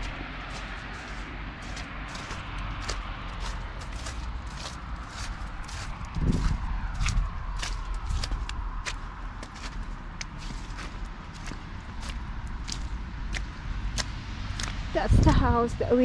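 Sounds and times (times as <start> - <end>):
footsteps in snow and slush: 0.0 - 15.4.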